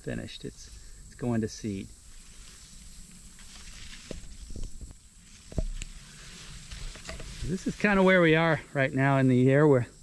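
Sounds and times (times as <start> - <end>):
faint hiss: 0.0 - 10.0
camera knocks and plant rustles: 3.4 - 6.0, 6.6 - 8.0.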